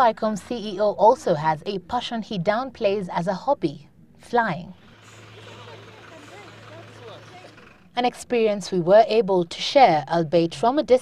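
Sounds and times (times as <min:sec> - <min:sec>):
aircraft engine humming: 0:04.7 - 0:08.4
faint voices: 0:05.0 - 0:07.9.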